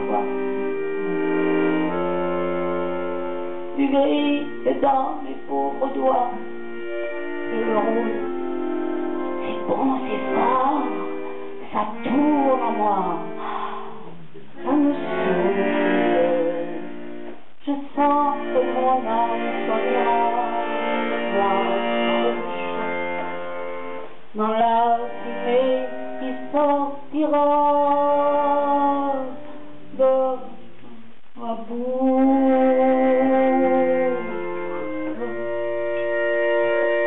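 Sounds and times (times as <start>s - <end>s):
woman singing: 0.0s - 2.1s, 3.8s - 6.5s, 7.5s - 8.4s, 9.4s - 16.9s, 17.6s - 23.4s, 24.3s - 36.1s
accordion sustained chord: 0.0s - 37.0s.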